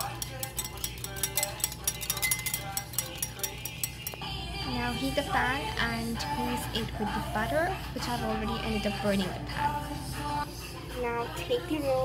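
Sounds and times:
whisk clicking against bowl: 0.0 - 4.2.

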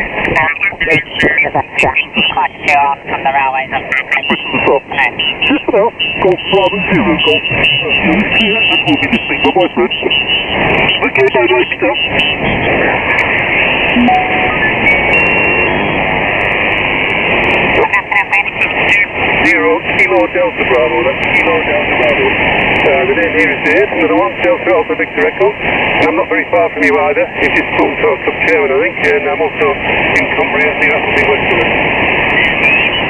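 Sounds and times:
garbled radio voices: 0.0 - 33.0
radio band noise: 0.0 - 33.0
radio whistles and sliding tones: 5.2 - 16.0, 32.3 - 33.0.

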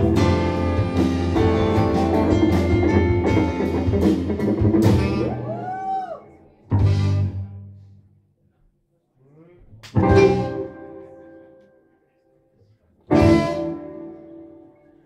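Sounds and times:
loud band hit: 0.0 - 5.7
jazz-rock band playing: 0.0 - 5.8, 6.7 - 7.6, 10.0 - 11.2, 13.1 - 14.6.

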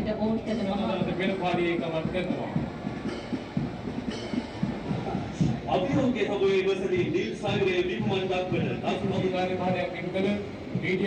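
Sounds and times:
faint band music: 0.0 - 11.0.

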